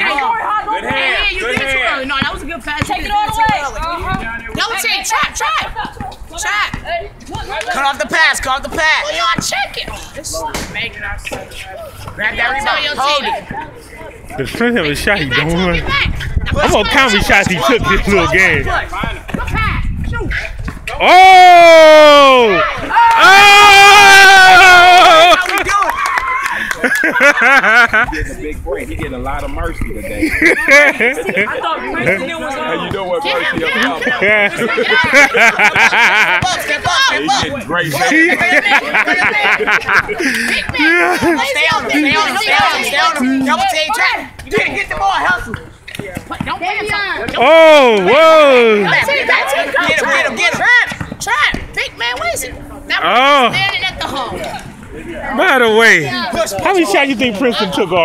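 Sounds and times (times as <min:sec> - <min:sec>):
voices talking and calling out: 0:00.0 - 0:58.0
basketball dribbled on asphalt: 0:00.8 - 0:04.8, 0:44.5 - 0:47.4, 0:49.8 - 0:51.8.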